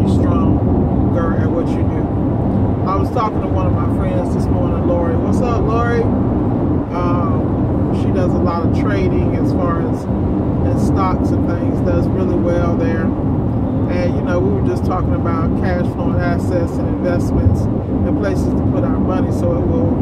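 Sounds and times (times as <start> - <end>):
road noise: 0.0 - 20.0
van engine running: 0.0 - 20.0.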